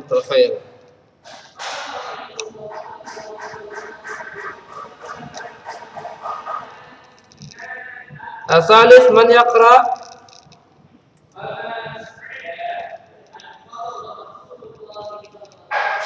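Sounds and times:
teacher speaking: 1.6 - 9.0.

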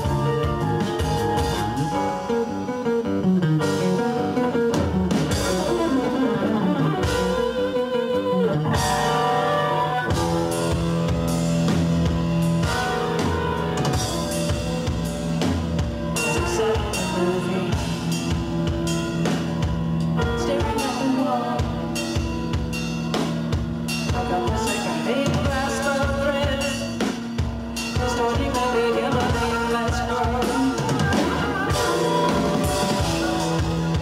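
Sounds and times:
flute: 0.0 - 2.7, 5.4 - 10.8, 28.0 - 34.0
rock band playing live: 0.0 - 34.0.

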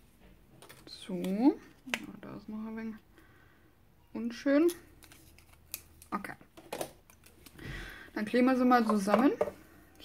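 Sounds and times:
soft handling sounds: 4.8 - 6.2.

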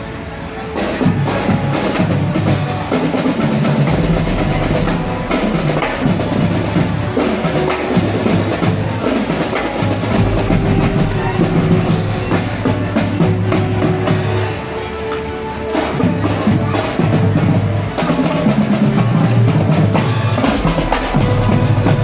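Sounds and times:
held brass notes: 0.0 - 22.0
snare drum marching rhythm: 0.8 - 22.0
marching bass drum: 1.0 - 14.7, 15.8 - 22.0.

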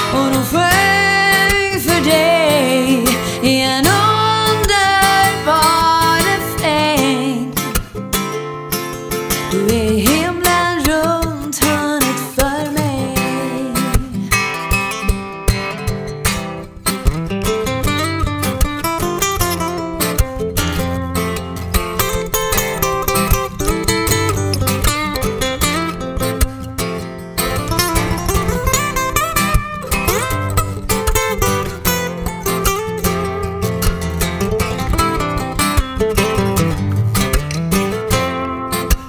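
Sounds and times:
acoustic guitar playing: 0.0 - 39.0.

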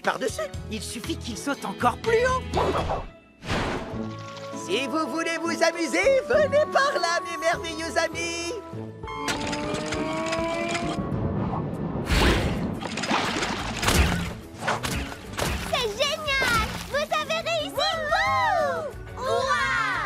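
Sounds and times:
cartoon background music: 0.0 - 20.0.

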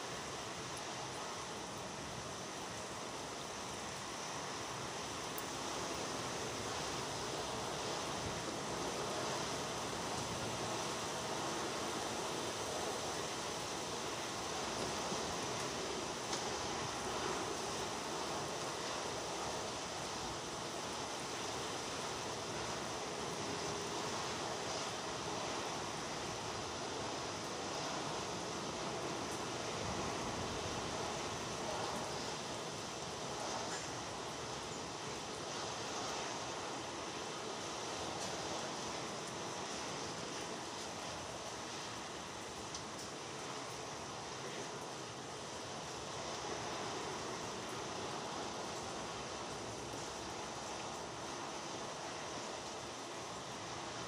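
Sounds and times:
steady rain falling: 0.0 - 54.0.

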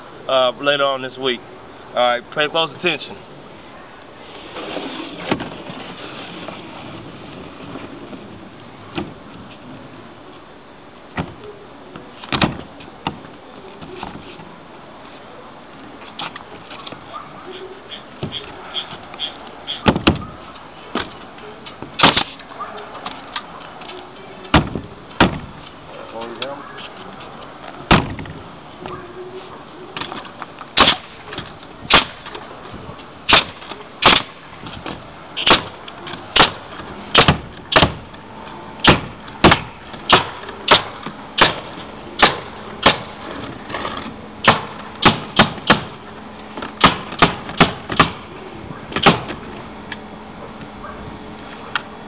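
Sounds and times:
nail gun firing: 22.0 - 22.4, 30.8 - 31.1, 31.9 - 32.3, 33.3 - 34.4, 35.4 - 35.7, 36.4 - 38.0, 38.8 - 43.1, 44.4 - 46.0, 46.8 - 48.2, 49.0 - 49.3.

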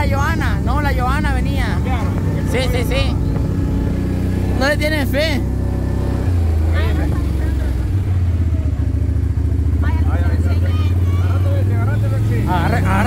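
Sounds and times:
engine droning: 0.0 - 13.0.

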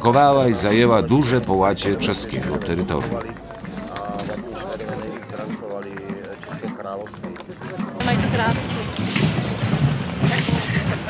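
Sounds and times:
man talking: 0.0 - 8.1
outdoor crowd noise: 0.0 - 11.0.

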